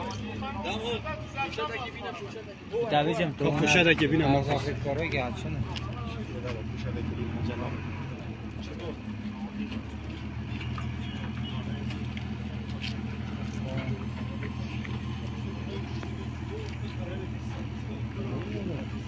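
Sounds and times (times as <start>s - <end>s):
indistinct voices: 0.0s - 19.0s
truck engine idling: 0.0s - 19.0s.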